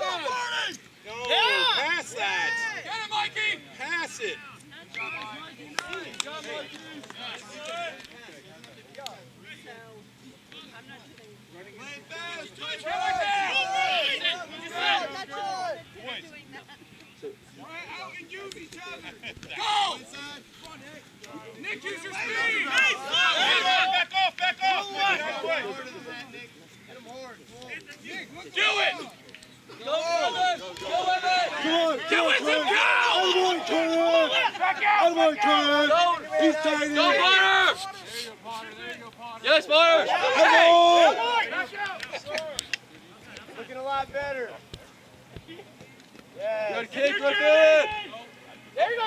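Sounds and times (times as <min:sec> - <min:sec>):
players and onlookers shouting: 0:00.0 - 0:06.7, 0:11.8 - 0:16.0, 0:17.5 - 0:20.8, 0:21.6 - 0:26.4, 0:27.7 - 0:42.6, 0:46.3 - 0:49.0.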